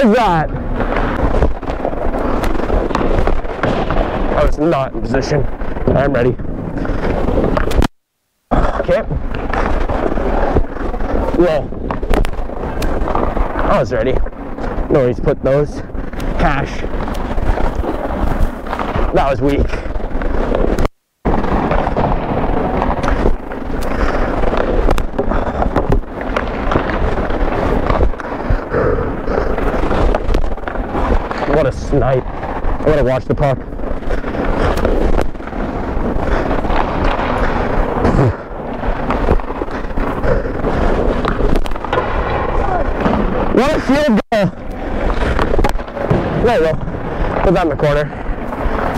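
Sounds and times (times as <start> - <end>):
rumble and rustle of gear: 0.0 - 48.9.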